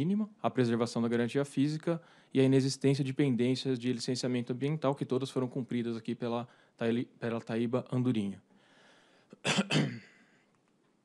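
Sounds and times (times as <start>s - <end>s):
man clearing his throat: 9.4s - 10.3s.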